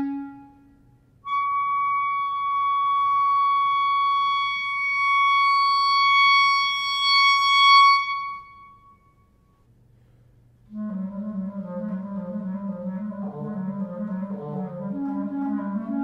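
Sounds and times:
clarinet holding a high note: 0.0 - 9.4.

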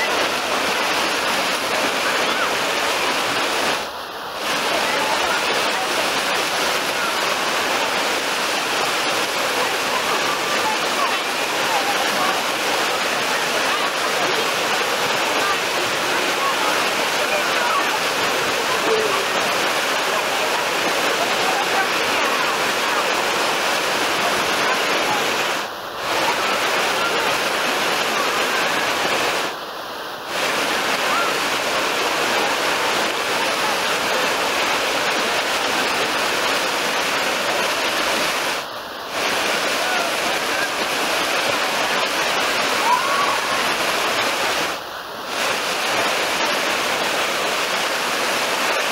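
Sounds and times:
waves breaking and splashing: 0.0 - 48.9.

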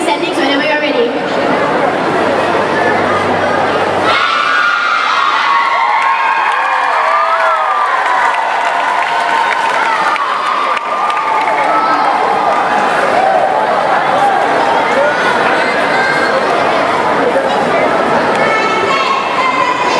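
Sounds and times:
girls shouting and cheering: 4.0 - 16.4, 18.4 - 19.9.

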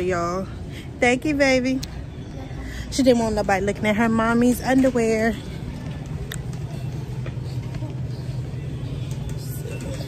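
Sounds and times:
faint voices: 0.0 - 10.0
low rumble of supermarket: 0.0 - 10.0.

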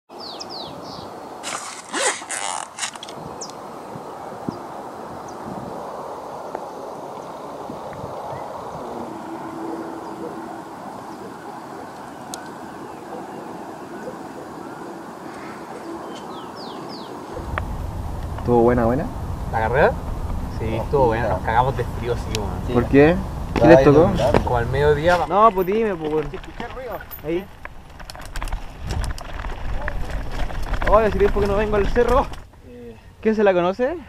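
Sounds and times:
bird chirping: 0.1 - 1.3, 8.2 - 26.0
outdoor background noise: 0.1 - 34.0
loud noise bursts: 17.3 - 23.6.

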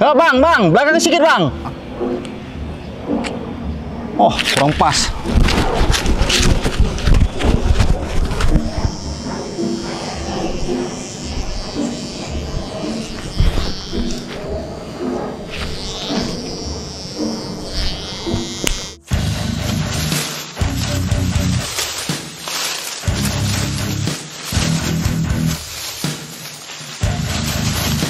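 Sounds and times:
electric hair clippers buzzing: 6.4 - 28.0
background music: 16.4 - 28.0.

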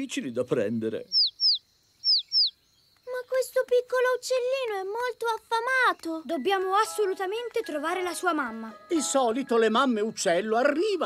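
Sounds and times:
cartoon baby bird chirping: 1.0 - 8.7.

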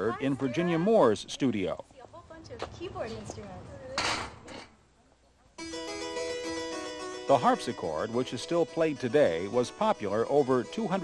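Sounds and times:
harpsichord playing: 5.6 - 11.0.

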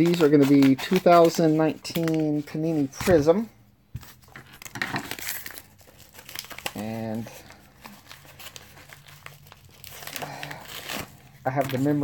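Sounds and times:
packaging crinkling: 4.2 - 12.0.

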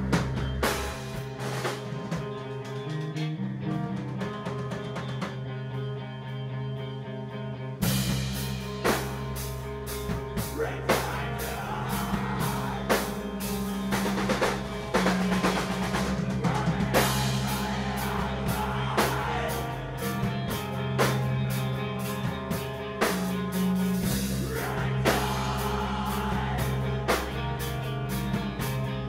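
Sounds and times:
drum kit hits: 0.0 - 2.6, 11.9 - 21.6
rock band playing: 0.0 - 29.0.

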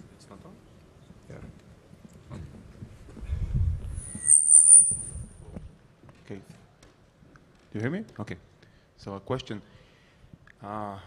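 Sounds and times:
microphone feedback whistle: 3.8 - 5.4.

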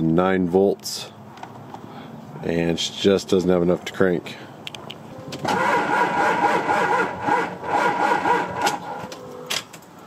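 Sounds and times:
starter motor cranking engine: 5.4 - 9.0.

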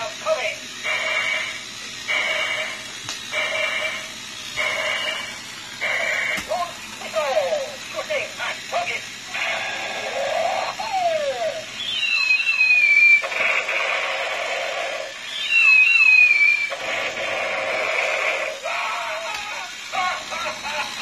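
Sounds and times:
buzzy electronic noise: 0.0 - 7.2.

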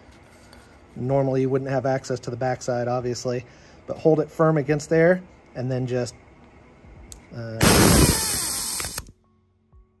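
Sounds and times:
pneumatic rivet gun running: 7.6 - 9.1.

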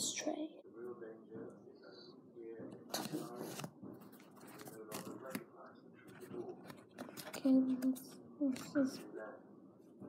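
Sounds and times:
paper rustling and crinkling: 2.9 - 7.6.

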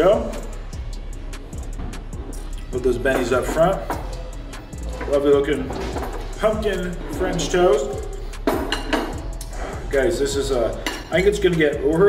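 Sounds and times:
background music: 0.0 - 12.0
dishes and cutlery handling: 4.8 - 6.4, 8.5 - 9.5, 10.8 - 11.2.

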